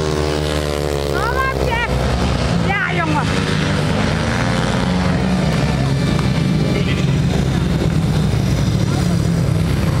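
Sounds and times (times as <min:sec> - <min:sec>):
motorcycle engine running at low revs: 0:00.0 - 0:10.0.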